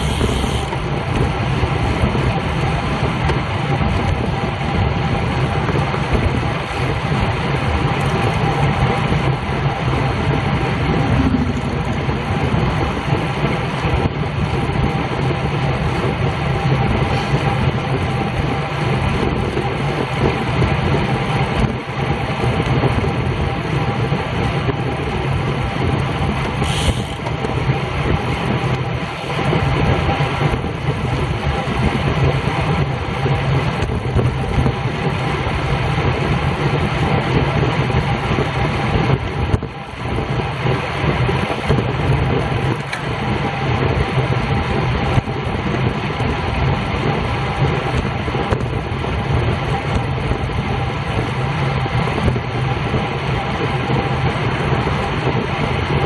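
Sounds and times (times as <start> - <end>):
road noise: 0.0 - 56.0
wind rush on microphone: 0.0 - 56.0.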